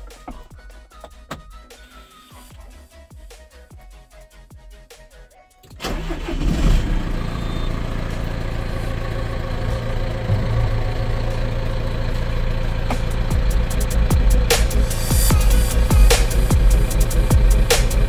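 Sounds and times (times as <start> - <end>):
diesel tractor engine idling: 5.8 - 18.0
electronic music: 13.2 - 18.0.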